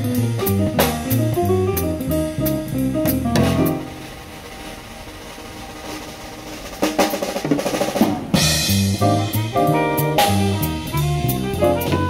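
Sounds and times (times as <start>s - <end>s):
upright bass: 0.0s - 4.0s, 8.4s - 12.0s
jazz drum kit played with sticks: 0.0s - 12.0s
keyboard notes: 9.0s - 12.0s.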